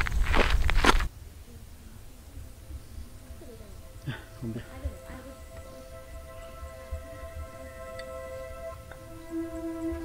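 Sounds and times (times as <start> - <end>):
footsteps on dry dirt: 0.0 - 1.1
wind rumbling on microphone: 0.0 - 4.1
faint distant voices: 1.1 - 10.0.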